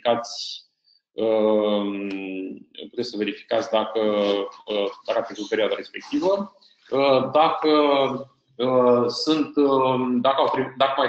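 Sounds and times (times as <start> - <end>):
man saying uhh: 0.0 - 0.6, 1.2 - 11.0
man talking: 0.0 - 0.6, 1.2 - 11.0.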